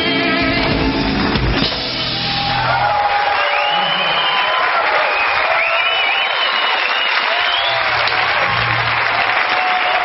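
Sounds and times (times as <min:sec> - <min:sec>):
people cheering: 0:01.8 - 0:10.0
audience clapping: 0:02.5 - 0:10.0.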